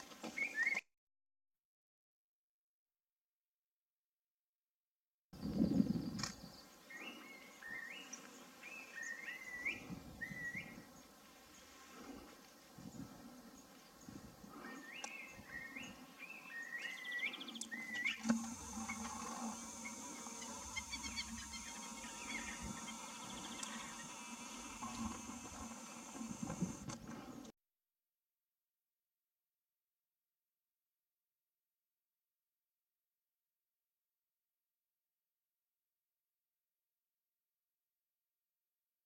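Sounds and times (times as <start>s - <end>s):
songbird whistling: 0.4s - 0.8s, 16.4s - 24.8s
steady high hiss: 18.2s - 27.0s.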